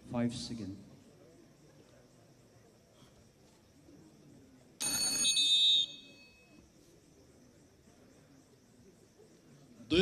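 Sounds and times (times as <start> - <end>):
bell ringing loudly: 4.8 - 6.4.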